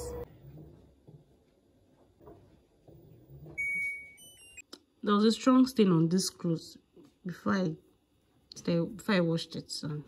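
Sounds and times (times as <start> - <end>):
washer electronic beeps: 0.0 - 0.3, 3.3 - 4.6
washing machine low hum: 0.0 - 4.6.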